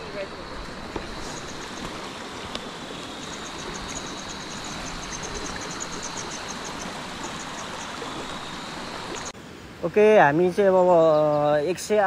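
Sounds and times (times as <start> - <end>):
stream running over stones: 0.0 - 9.4.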